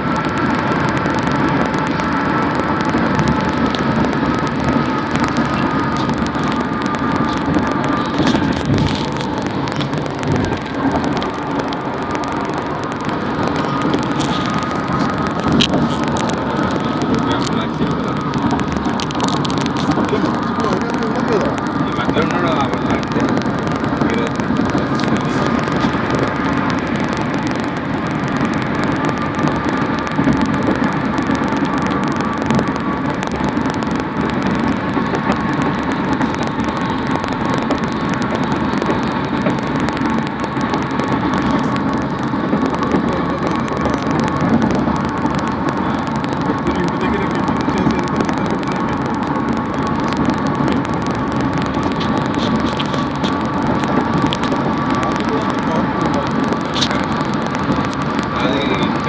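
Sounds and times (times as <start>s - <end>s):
faint steady whine: 0.0s - 59.0s
vehicle road and engine rumble: 0.0s - 59.0s.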